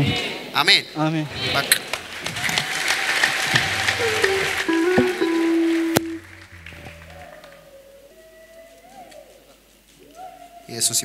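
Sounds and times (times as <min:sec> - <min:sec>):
congregation applauding: 0:01.8 - 0:07.8
worship band playing held chords: 0:02.0 - 0:08.0.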